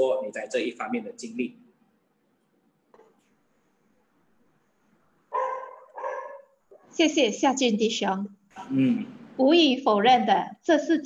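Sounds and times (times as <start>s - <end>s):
dog barking: 5.3s - 7.0s.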